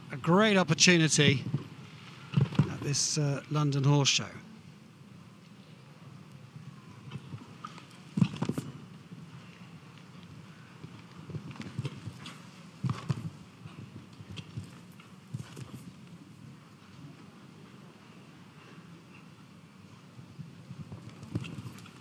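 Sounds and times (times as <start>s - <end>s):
horse hooves cantering on sand: 7.1s - 16.2s, 20.4s - 22.0s.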